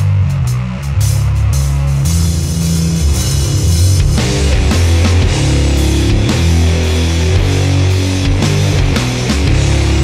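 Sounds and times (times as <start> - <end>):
bass guitar low notes: 0.0 - 10.0
distorted guitar: 0.0 - 10.0
drum kit and cymbals: 0.0 - 10.0.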